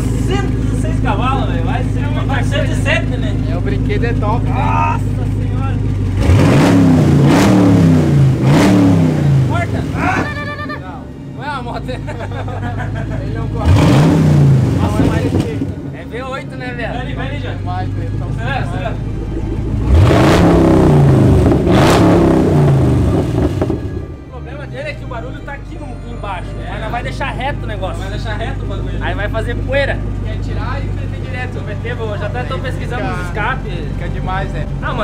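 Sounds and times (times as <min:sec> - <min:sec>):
car engine revving: 0:00.0 - 0:10.3, 0:12.7 - 0:24.3.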